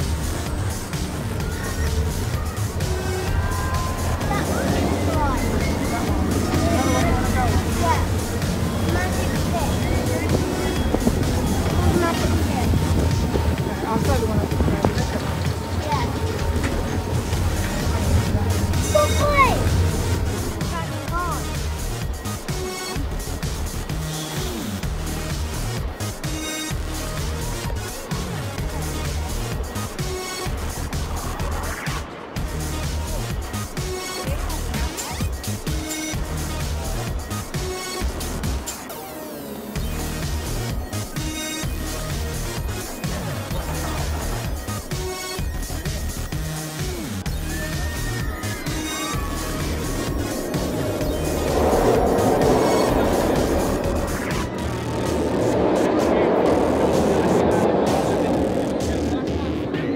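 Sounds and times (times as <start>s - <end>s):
music playing: 0.0s - 59.9s
voices: 0.0s - 59.9s
steady low hum: 48.5s - 59.3s.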